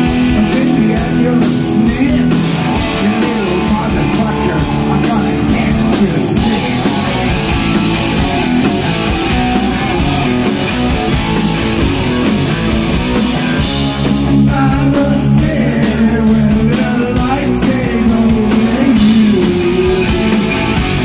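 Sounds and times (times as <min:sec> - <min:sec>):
live rock band playing: 0:00.0 - 0:21.0.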